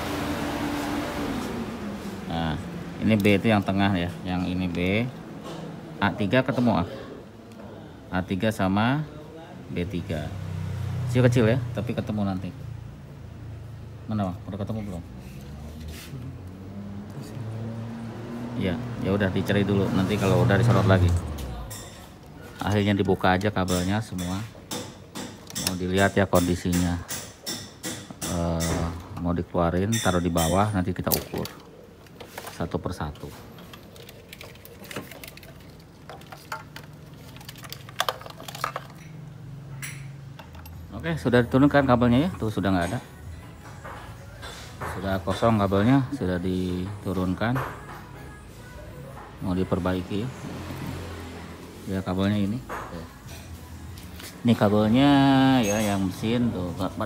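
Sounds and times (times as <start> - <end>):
plastic connectors clicking and clattering: 33.6 - 39.1.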